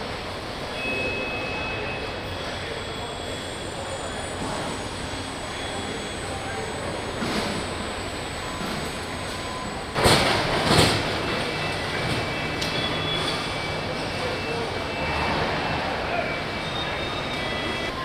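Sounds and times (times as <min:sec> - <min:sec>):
factory machinery din: 0:00.0 - 0:18.0.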